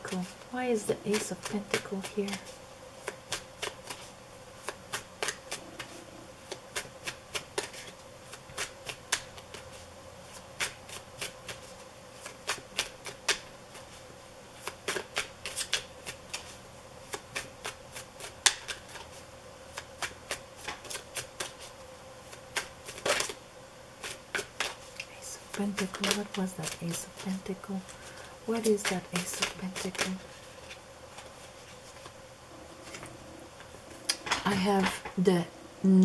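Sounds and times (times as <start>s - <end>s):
person speaking: 0.0s - 2.5s, 25.1s - 30.4s, 32.5s - 36.0s
cards being shuffled: 1.1s - 14.0s, 14.6s - 21.7s, 22.3s - 23.4s, 24.0s - 32.2s.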